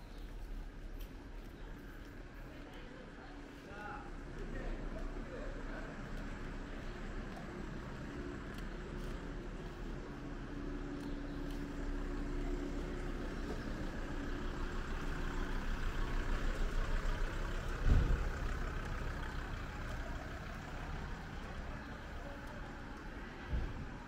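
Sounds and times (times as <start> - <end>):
van engine running: 0.0 - 24.0
low thump: 17.8 - 18.3.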